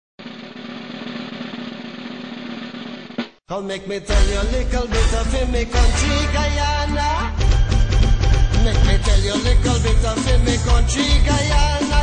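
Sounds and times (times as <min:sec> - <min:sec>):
rapid drum roll: 0:00.2 - 0:03.4.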